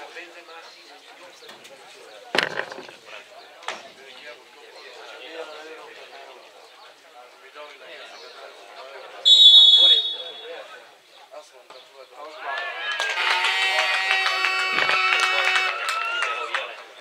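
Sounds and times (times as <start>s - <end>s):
horns sounding: 9.3s - 10.6s
referee whistle blast: 9.3s - 10.6s.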